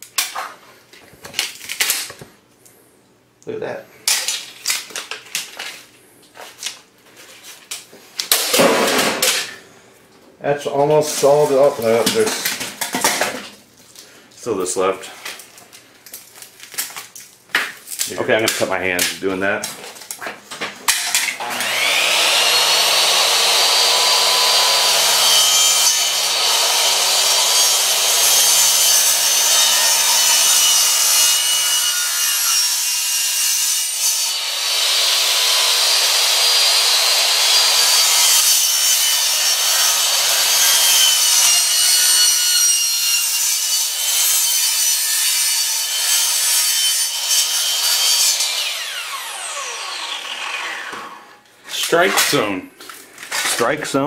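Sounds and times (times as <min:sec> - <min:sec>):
miter saw cutting plastic and metal: 0:20.9 - 0:52.4.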